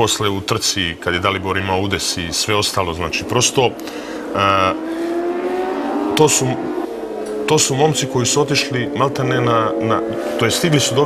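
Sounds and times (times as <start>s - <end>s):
motorbike engine accelerating: 4.0s - 11.0s.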